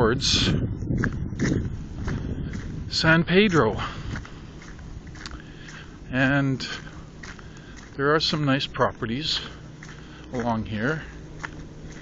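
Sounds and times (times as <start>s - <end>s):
footsteps on sandy road: 0.0s - 12.0s
low rumble on microphone: 0.0s - 12.0s.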